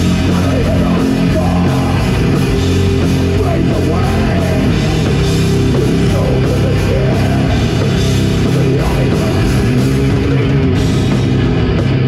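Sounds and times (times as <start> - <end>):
death metal band playing live: 0.0 - 12.0.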